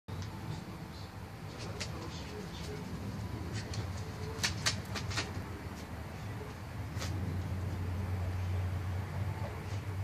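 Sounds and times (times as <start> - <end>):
steady low hum: 0.1 - 10.0.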